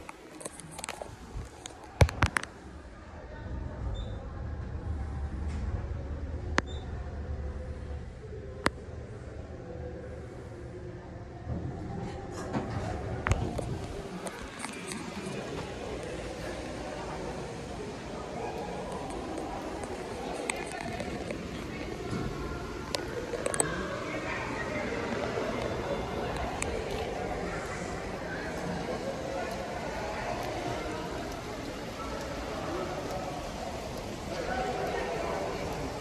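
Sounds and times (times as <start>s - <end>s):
indistinct background voices: 0.0s - 36.0s.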